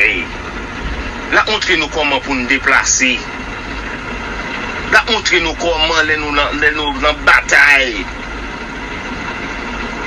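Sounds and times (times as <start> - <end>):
steady background rumble and hiss: 0.0 - 10.0.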